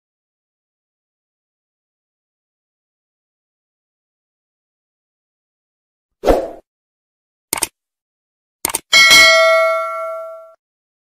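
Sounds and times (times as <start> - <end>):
notification bell ding: 8.9 - 10.6.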